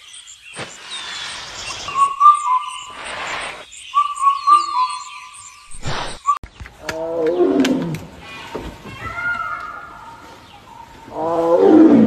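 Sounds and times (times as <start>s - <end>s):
tiger roaring: 11.1s - 12.0s.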